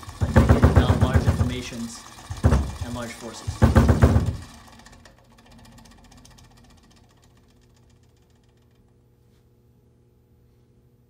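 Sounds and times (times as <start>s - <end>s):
small motor rattling and humming: 0.0s - 9.0s.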